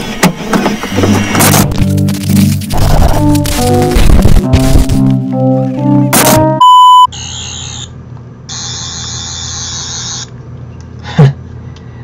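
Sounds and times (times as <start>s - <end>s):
short musical phrase: 2.2s - 6.6s
loud steady electronic beep: 6.2s - 7.4s.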